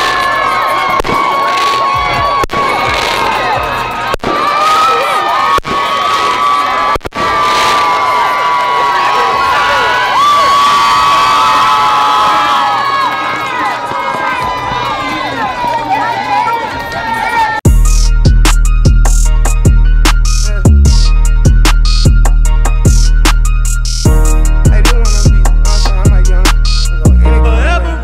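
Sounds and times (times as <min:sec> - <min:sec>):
children shouting: 0:00.0 - 0:17.6
crowd cheering: 0:00.0 - 0:17.7
heavy-bass hip hop music: 0:17.6 - 0:28.0.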